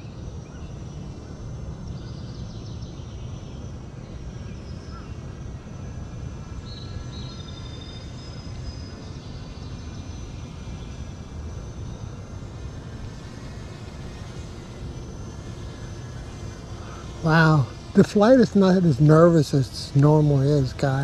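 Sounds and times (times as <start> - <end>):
low rumbling background noise: 0.0 - 21.0.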